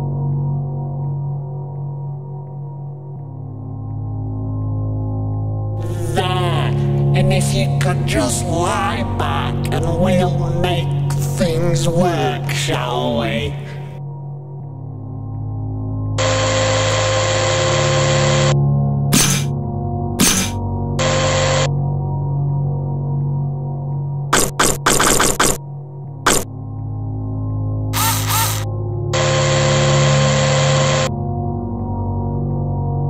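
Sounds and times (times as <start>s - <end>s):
low droning music: 0.0s - 33.0s
steady mechanical whirring: 16.2s - 18.6s, 28.0s - 31.1s.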